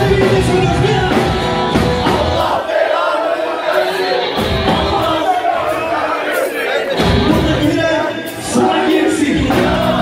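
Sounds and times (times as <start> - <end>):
live rock band playing: 0.0 - 2.6, 3.6 - 10.0
audience shouting and singing: 0.0 - 10.0.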